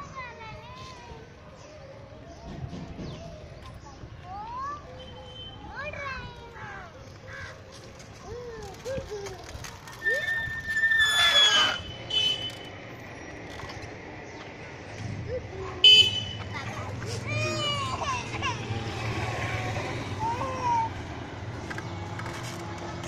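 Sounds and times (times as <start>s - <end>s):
children calling out: 15.2s - 21.2s.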